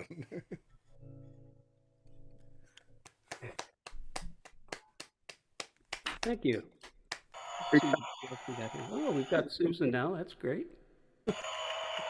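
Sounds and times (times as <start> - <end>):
people clapping: 3.0 - 7.4, 11.3 - 12.0.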